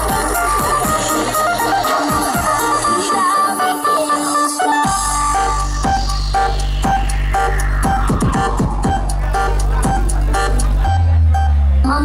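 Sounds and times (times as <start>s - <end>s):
loud electronic dance music: 0.0s - 12.0s.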